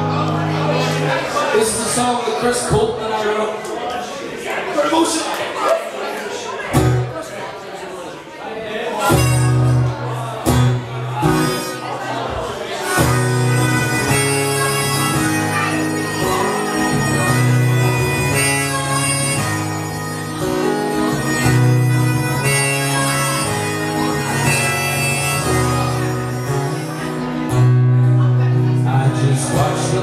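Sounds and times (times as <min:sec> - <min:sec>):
strummed acoustic guitar: 0:06.7 - 0:07.1, 0:09.0 - 0:30.0
harmonica playing chords: 0:09.0 - 0:30.0.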